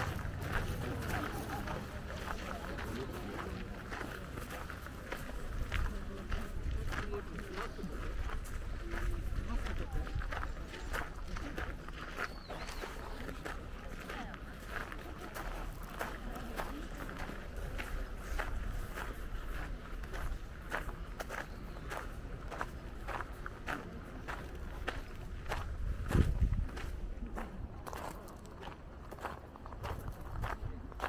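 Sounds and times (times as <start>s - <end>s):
footsteps crunching on gravel: 0.0s - 31.0s.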